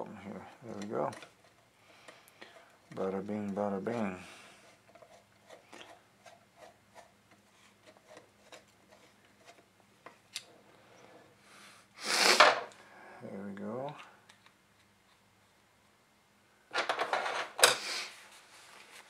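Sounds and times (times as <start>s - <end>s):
compressed air hissing blasts: 12.0s - 12.7s.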